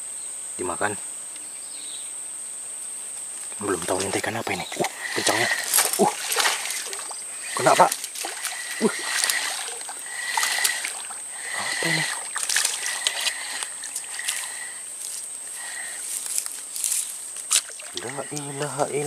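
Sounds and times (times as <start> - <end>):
fish splashing at surface: 4.8 - 14.7, 17.5 - 18.5.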